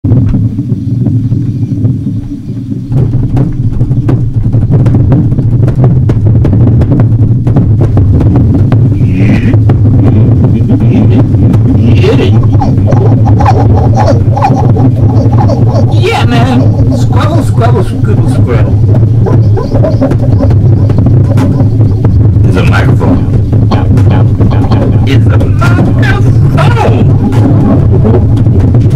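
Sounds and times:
low drone: 0:00.0 - 0:28.9
crackling clicks: 0:00.1 - 0:28.9.

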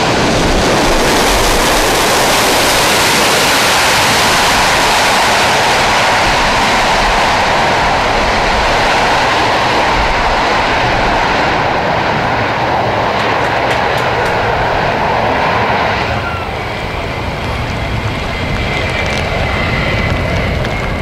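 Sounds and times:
jet engines running: 0:00.0 - 0:21.0.

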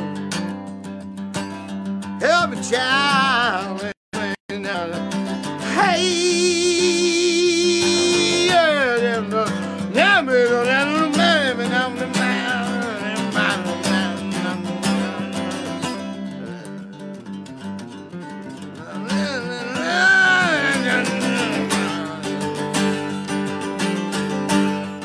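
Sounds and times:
acoustic guitar strumming: 0:00.0 - 0:25.0
person singing: 0:02.2 - 0:17.1, 0:18.7 - 0:23.8.

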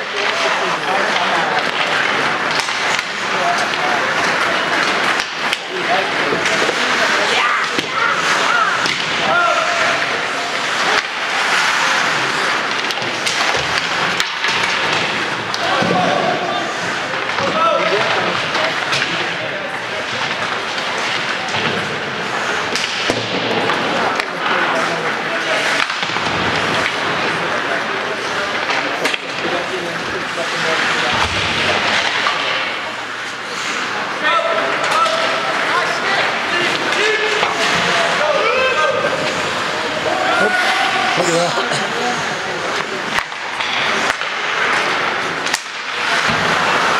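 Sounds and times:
players calling out: 0:00.0 - 0:21.5, 0:22.3 - 0:46.9
skates scraping on ice: 0:00.0 - 0:46.9
stick and puck knocks: 0:42.8 - 0:46.9.

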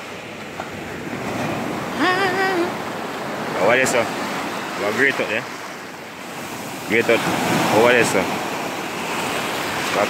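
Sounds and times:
waves washing up shore: 0:00.0 - 0:10.0
person calling: 0:02.0 - 0:02.8.

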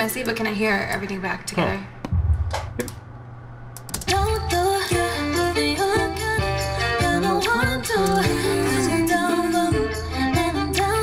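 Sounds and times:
low bass line: 0:01.6 - 0:03.0
layered female harmony vocals: 0:04.1 - 0:11.0.

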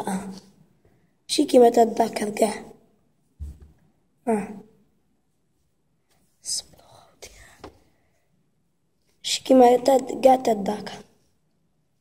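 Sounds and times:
person whispering: 0:06.4 - 0:07.9.

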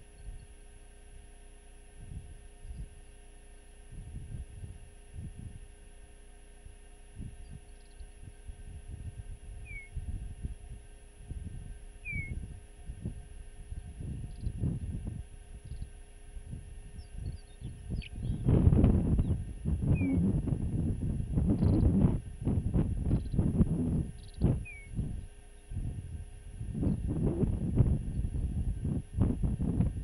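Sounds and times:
wind buffeting microphone: 0:02.0 - 0:03.0, 0:03.9 - 0:05.7, 0:07.1 - 0:30.0.

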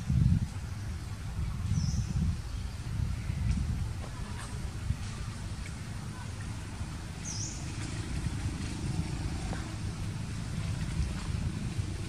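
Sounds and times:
vehicle engine rumbling: 0:03.1 - 0:12.0.

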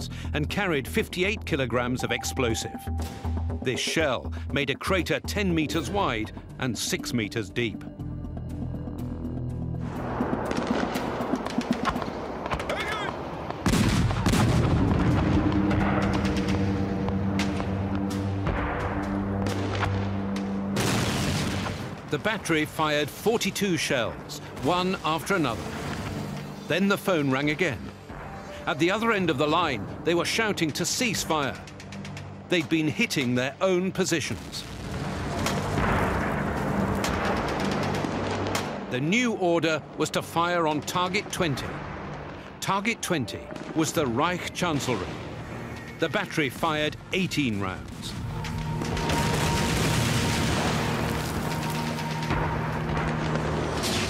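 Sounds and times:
low music tones: 0:00.0 - 0:12.5, 0:13.2 - 0:54.0
music with low sustained notes: 0:00.3 - 0:11.3, 0:14.6 - 0:21.7
artillery boom and rumble: 0:09.8 - 0:22.2, 0:34.4 - 0:38.9
crackling gunfire: 0:09.9 - 0:22.7, 0:24.4 - 0:26.7, 0:34.4 - 0:38.9, 0:47.9 - 0:54.0.

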